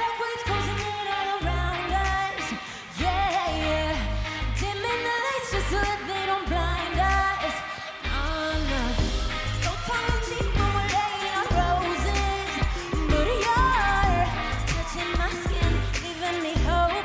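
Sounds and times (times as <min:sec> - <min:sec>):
woman singing into microphone: 0:00.0 - 0:17.0
deep electronic bass beat: 0:08.8 - 0:17.0.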